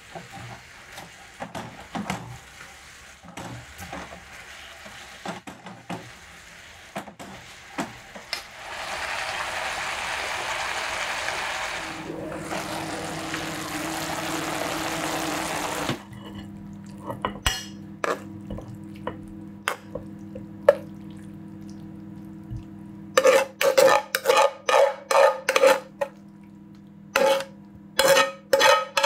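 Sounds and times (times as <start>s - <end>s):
stir-fry sizzling in a frying pan: 0.0s - 16.1s.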